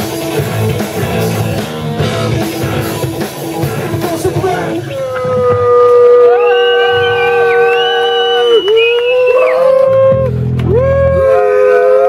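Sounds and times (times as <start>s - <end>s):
voices howling long notes: 4.6s - 12.0s.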